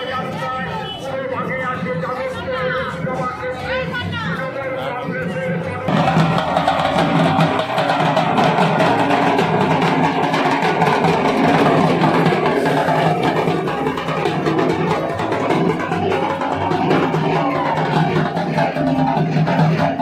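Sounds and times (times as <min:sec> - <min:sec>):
barrel drums beaten with sticks: 0:05.9 - 0:20.0.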